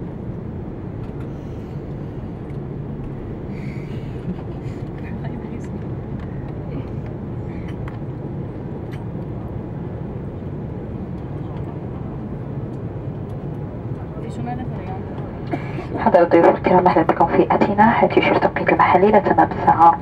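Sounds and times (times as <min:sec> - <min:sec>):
aircraft cabin rumble: 0:00.0 - 0:20.0.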